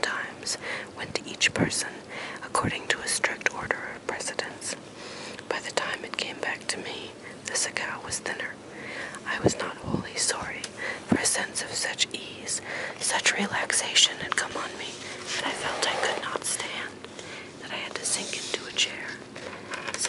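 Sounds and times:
person whispering: 0:00.0 - 0:04.8, 0:05.5 - 0:17.0, 0:17.6 - 0:19.2.

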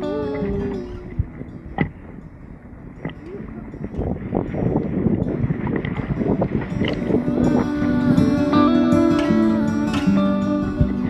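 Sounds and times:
guitar music: 0:00.0 - 0:11.0.

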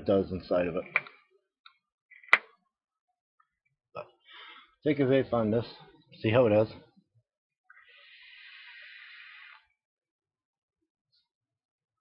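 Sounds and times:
air hissing through vape atomizer: 0:07.8 - 0:09.7.

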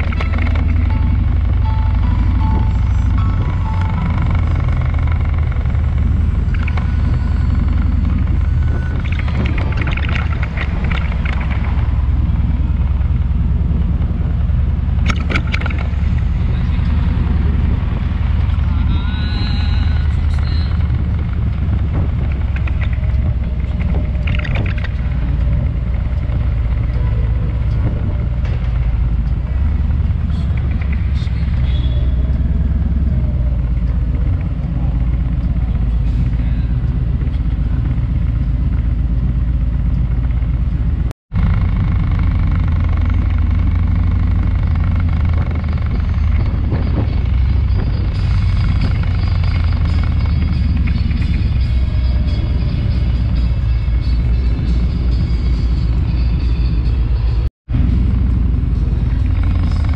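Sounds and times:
motorcycle engine running: 0:00.0 - 0:59.9
road noise: 0:00.0 - 0:59.9.

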